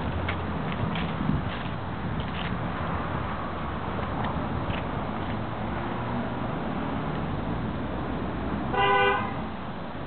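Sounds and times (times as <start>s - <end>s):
car horn honk: 8.7s - 9.4s.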